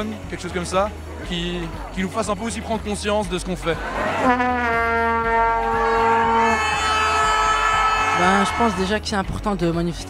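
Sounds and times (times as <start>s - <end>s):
horn low steady note: 4.2s - 8.4s
higher horn note: 4.2s - 8.6s.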